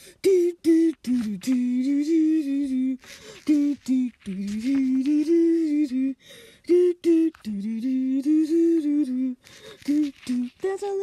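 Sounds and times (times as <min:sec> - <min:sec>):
person humming: 0:00.0 - 0:11.0.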